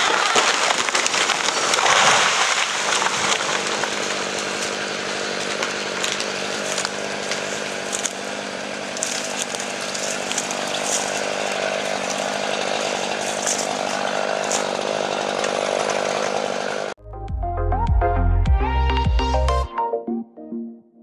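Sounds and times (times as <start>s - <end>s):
chainsaw running: 0.0s - 17.0s.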